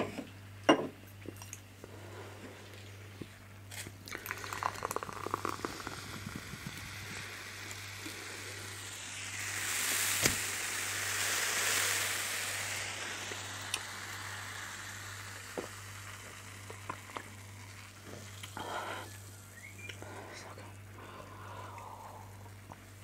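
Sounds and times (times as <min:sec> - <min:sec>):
soft drink pouring and fizzing: 0:01.4 - 0:23.0.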